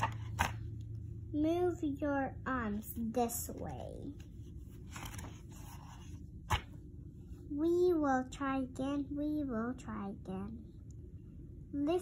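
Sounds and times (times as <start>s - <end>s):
book page turning: 0.0s - 0.7s, 3.5s - 6.8s.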